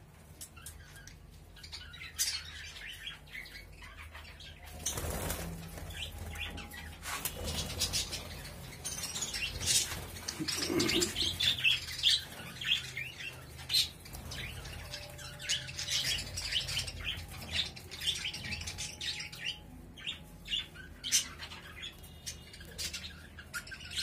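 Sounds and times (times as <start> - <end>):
budgerigars chirping and chattering: 0.3 - 24.0.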